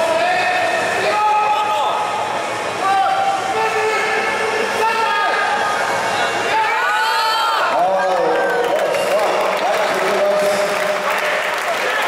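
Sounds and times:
crowd yelling shouts of encouragement: 6.4s - 9.0s.

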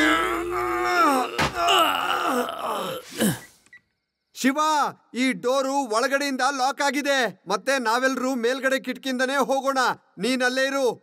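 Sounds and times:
man's cartoon voice groaning: 0.0s - 3.4s.

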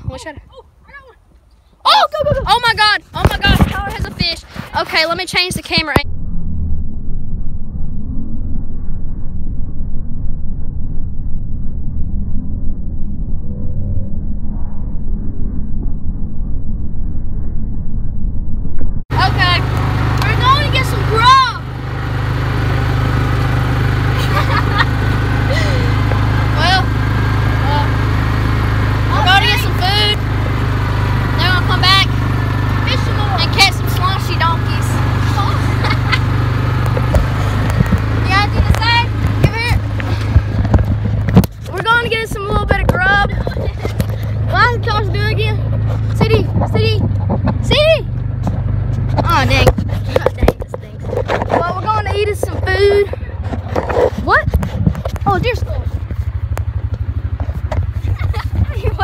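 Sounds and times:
steady low hum: 0.0s - 59.0s
indistinct voices talking: 19.1s - 59.0s.

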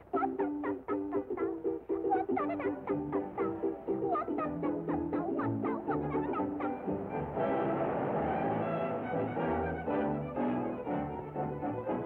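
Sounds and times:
orchestral cartoon music with brass: 2.4s - 12.0s.

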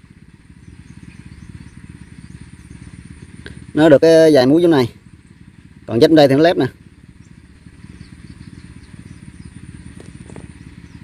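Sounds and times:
faint low engine rumble: 0.0s - 11.0s.

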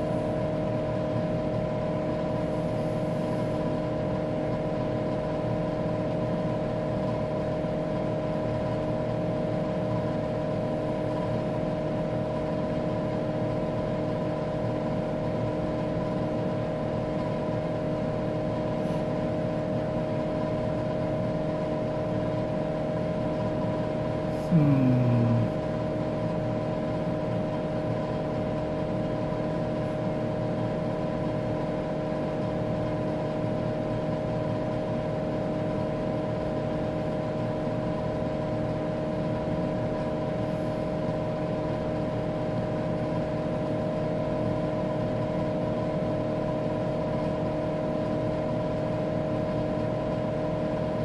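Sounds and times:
computer hum and fan whir: 0.0s - 51.0s.

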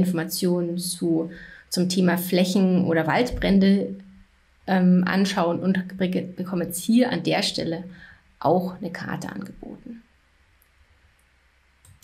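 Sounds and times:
computer mouse clicks: 10.6s - 12.0s.

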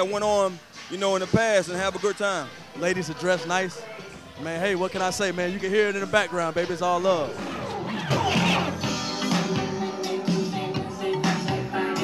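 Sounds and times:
club dance music: 0.0s - 12.0s.

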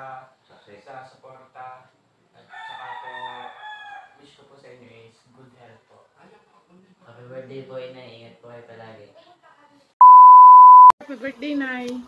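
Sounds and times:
loud electronic beep: 10.0s - 10.9s.

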